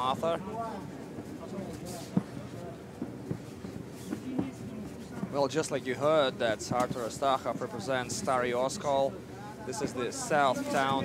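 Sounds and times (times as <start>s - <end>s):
crowd murmur: 0.0s - 11.0s.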